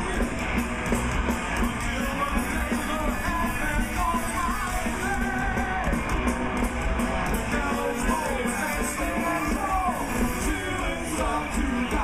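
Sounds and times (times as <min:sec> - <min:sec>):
heavy metal band playing live: 0:00.0 - 0:12.0
pitch-bending guitar lead: 0:00.0 - 0:12.0.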